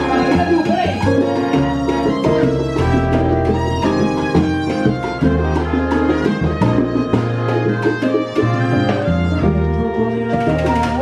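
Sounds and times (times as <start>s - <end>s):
congas and timbales: 0.0s - 11.0s
low bass notes: 0.0s - 11.0s
salsa band playing: 0.0s - 11.0s.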